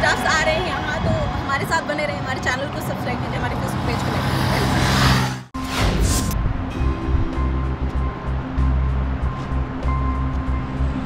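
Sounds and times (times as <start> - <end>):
road noise: 0.0 - 11.0
motorcycle passing: 2.5 - 5.5
whoosh sound effect: 4.6 - 6.4
music: 5.6 - 11.0.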